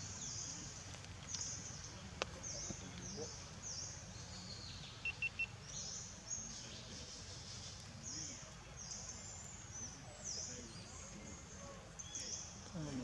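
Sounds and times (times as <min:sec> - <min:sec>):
birds calling: 0:00.0 - 0:13.0
low steady background noise: 0:00.0 - 0:13.0
short bird chirps: 0:05.0 - 0:05.6.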